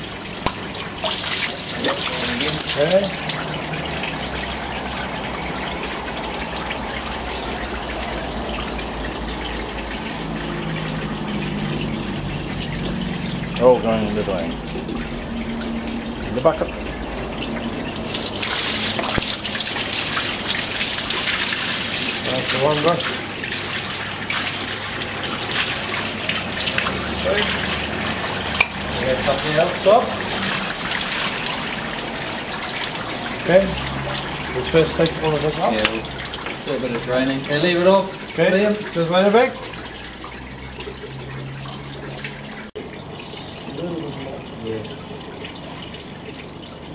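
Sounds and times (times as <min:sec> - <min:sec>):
oil splashing and gushing: 0:00.0 - 0:46.9.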